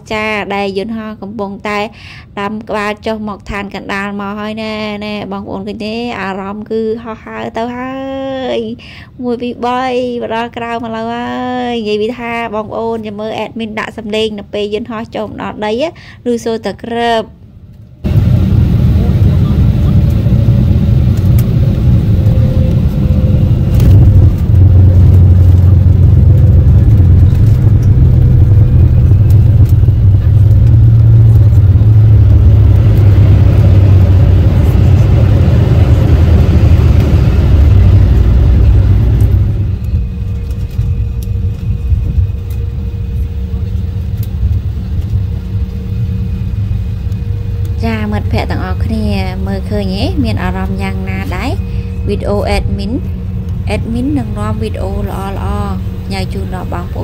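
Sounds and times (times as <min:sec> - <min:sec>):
jet engines and wheels rumbling: 0:00.0 - 0:57.0.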